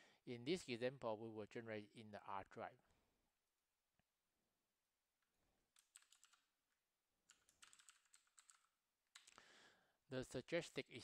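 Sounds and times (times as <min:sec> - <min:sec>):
typing on computer keyboard: 0:05.7 - 0:06.5, 0:07.2 - 0:09.4.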